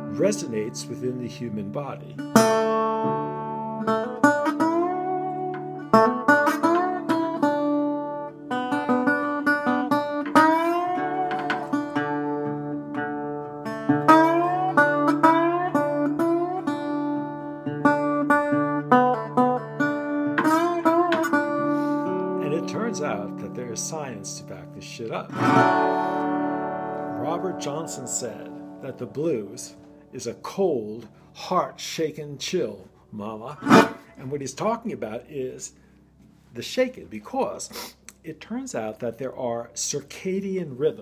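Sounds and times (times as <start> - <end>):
slide resonator guitar playing blues: 0.0 - 31.2, 33.6 - 34.4.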